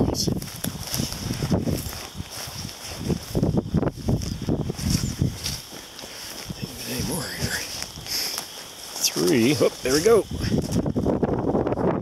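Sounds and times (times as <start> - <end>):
grass stems rustling: 0.0 - 11.2
footsteps through dry grass: 0.0 - 11.9.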